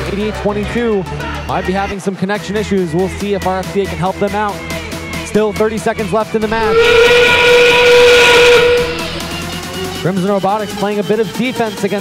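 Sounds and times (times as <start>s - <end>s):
steam train whistle blast: 6.5s - 9.6s.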